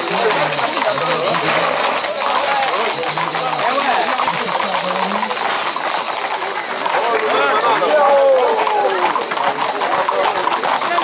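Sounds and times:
crowd voices: 0.0 - 11.0
horse hooves clattering on asphalt: 0.0 - 11.0.

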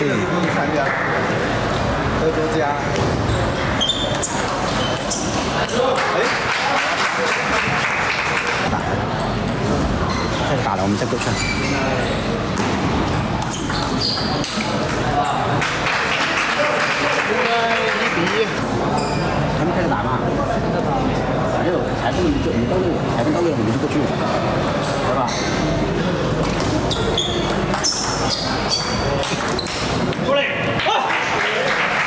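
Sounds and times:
background chatter: 0.0 - 32.0
shoes squeaking on floor: 3.0 - 5.5, 10.0 - 10.5, 11.2 - 14.6, 18.9 - 19.4, 26.6 - 30.1.

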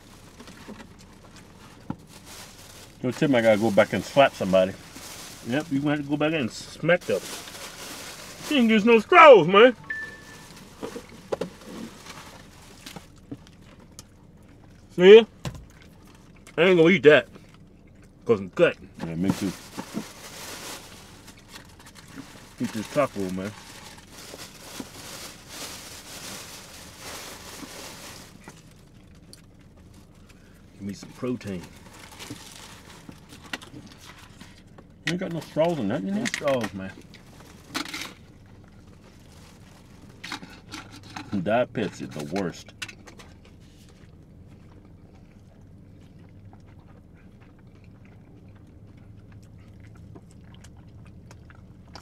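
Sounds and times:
plastic wrappers rustling: 0.0 - 13.4, 19.0 - 29.0, 31.2 - 34.6, 35.2 - 42.6
person chewing: 15.6 - 16.6, 17.2 - 18.2, 43.4 - 52.0.

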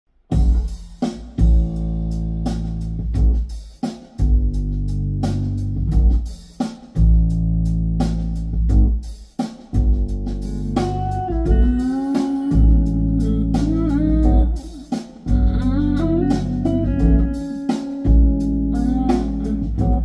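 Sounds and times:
bass guitar notes: 0.3 - 0.8, 1.4 - 3.5, 4.2 - 6.4, 7.0 - 9.1, 9.8 - 20.0.

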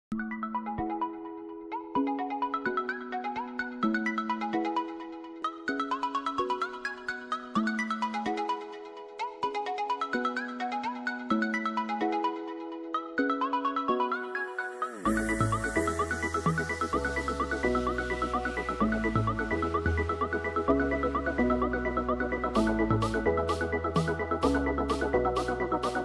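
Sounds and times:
music with quick repeating notes: 13.4 - 26.0.

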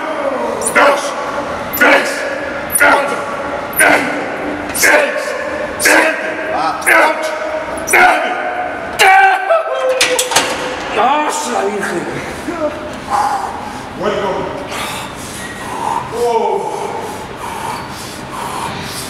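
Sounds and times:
man shouting counts: 0.0 - 10.0.

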